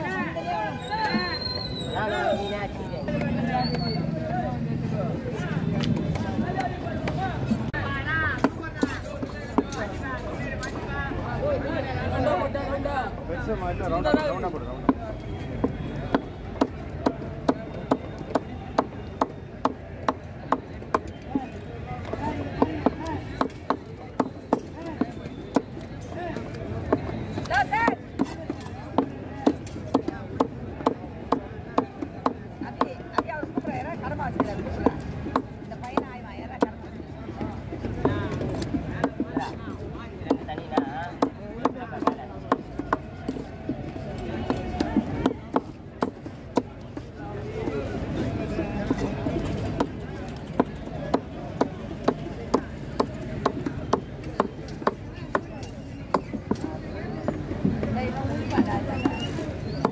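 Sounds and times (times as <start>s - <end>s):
background voices chattering: 0.0s - 59.9s.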